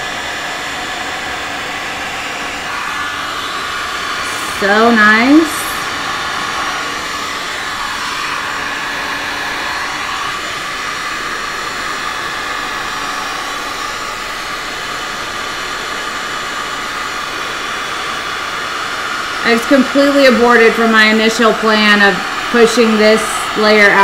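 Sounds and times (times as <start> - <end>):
heat gun blowing air: 0.0 - 24.0.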